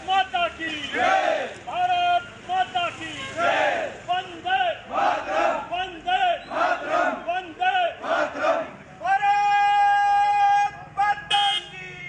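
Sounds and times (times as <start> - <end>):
men chanting slogans: 0.0 - 9.2
long held shout: 7.1 - 11.8.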